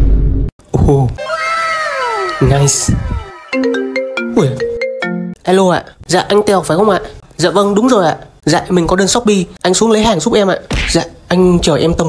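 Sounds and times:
mobile phone ringtone: 3.3s - 5.4s.

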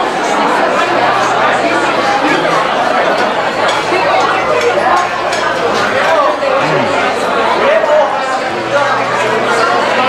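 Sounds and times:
diners talking: 0.0s - 10.0s.

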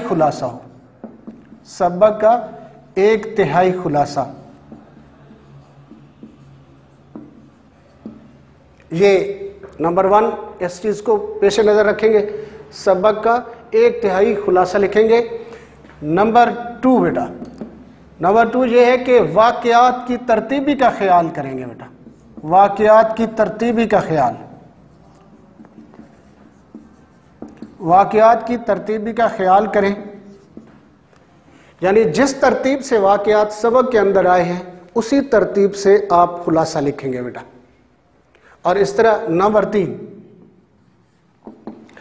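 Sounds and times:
man talking: 0.0s - 0.7s, 1.6s - 4.5s, 8.9s - 15.4s, 16.0s - 17.5s, 18.2s - 24.7s, 27.6s - 30.4s, 31.8s - 37.6s, 38.6s - 40.3s
marker writing on whiteboard: 0.0s - 36.5s, 38.8s - 42.0s
light taps on whiteboard: 1.0s - 1.7s, 4.5s - 8.9s, 17.3s - 18.0s, 21.9s - 23.4s, 24.6s - 27.9s, 30.3s - 30.9s, 41.4s - 42.0s
marker tip ticking on board: 4.5s - 8.4s, 25.0s - 27.8s.

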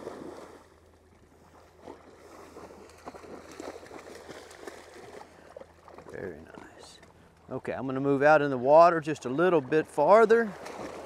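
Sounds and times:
dogs splashing in water: 0.0s - 7.2s, 9.2s - 11.0s.

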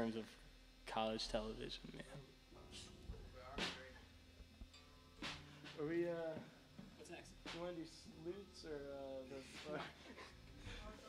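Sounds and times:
man speaking: 0.0s - 0.3s, 0.9s - 4.0s, 5.8s - 11.0s.

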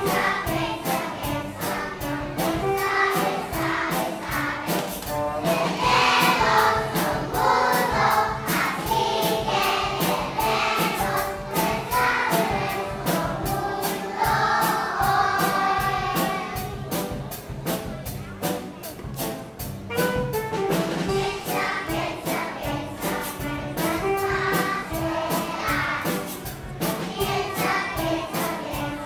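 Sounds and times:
young children singing: 0.0s - 17.0s, 21.0s - 29.0s
backing music with steady beat: 0.0s - 29.0s.

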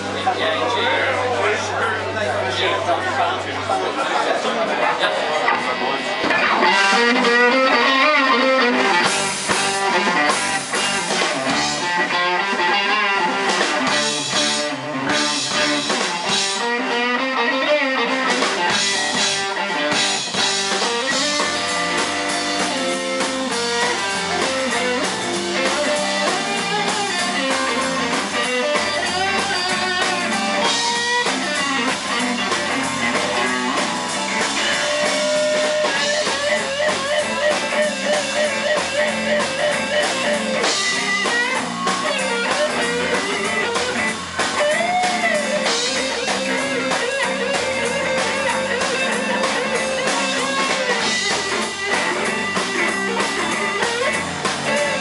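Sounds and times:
electric guitar lead line: 0.0s - 55.0s
rock band playing: 0.0s - 55.0s.

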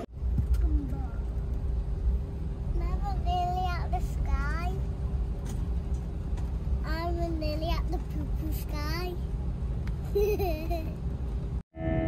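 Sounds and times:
airliner cabin rumble: 0.0s - 11.7s.

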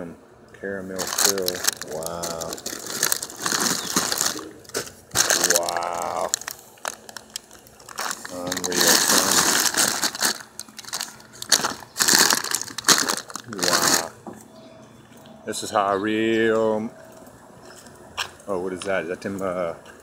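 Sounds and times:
plastic wrappers crinkling: 1.0s - 14.2s
short voiced sounds: 5.4s - 6.3s.

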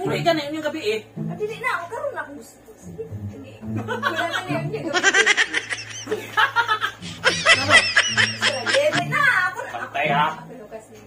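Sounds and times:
person laughing: 5.0s - 9.1s
person talking: 7.1s - 9.1s.

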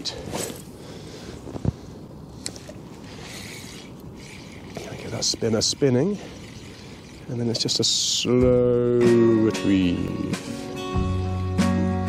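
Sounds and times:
light wind: 0.0s - 11.4s.

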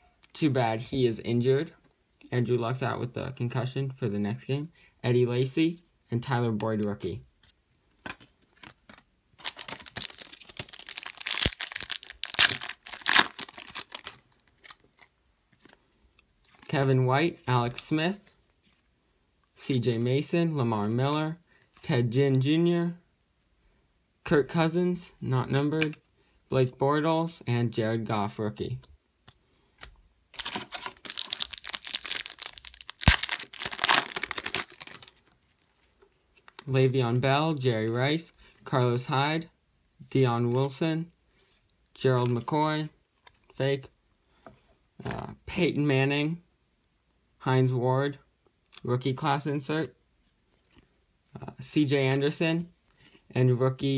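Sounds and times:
plastic wrapper crinkling: 8.0s - 15.8s, 29.8s - 36.7s
plastic wrapper tearing: 9.4s - 15.1s, 30.3s - 35.6s.

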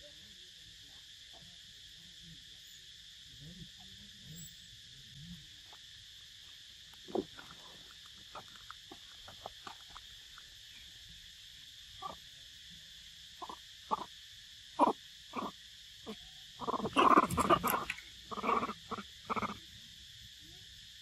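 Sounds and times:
insects droning: 0.0s - 21.0s
macaques grunting and chattering: 6.9s - 10.4s, 12.0s - 12.2s, 13.4s - 14.1s, 14.8s - 19.6s.

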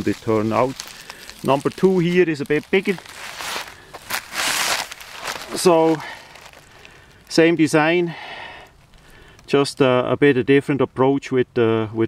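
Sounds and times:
rustling footsteps: 0.0s - 7.5s.

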